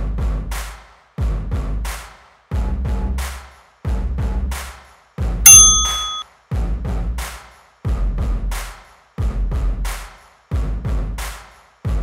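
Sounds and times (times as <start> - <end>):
interval timer ding: 5.5 - 6.2.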